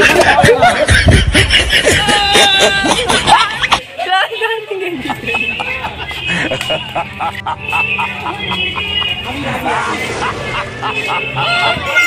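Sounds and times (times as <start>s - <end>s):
young men shouting and whooping: 1.8s - 3.1s.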